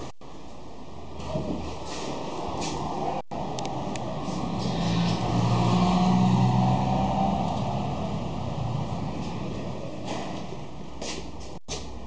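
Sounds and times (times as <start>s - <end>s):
traffic noise: 0.0s - 12.0s
motor vehicle passing: 1.2s - 11.3s.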